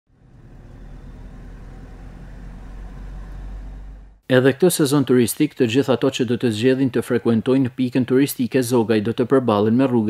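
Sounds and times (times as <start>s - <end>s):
car engine and road rumble: 0.1s - 4.2s.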